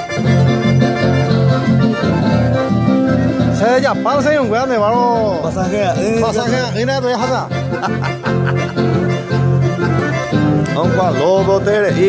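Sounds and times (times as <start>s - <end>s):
accordion chords and bass: 0.0s - 12.0s.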